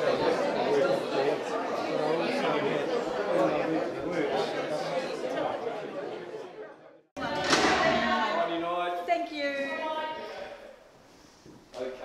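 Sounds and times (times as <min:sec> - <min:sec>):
crowd chatter in a hall: 0:00.0 - 0:12.0.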